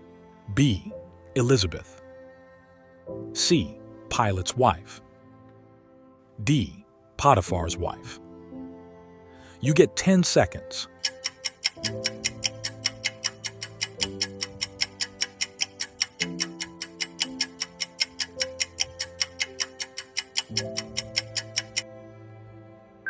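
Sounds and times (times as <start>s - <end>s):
soft background music chords: 0.0s - 23.0s
fast clock-like ticks: 10.9s - 21.8s.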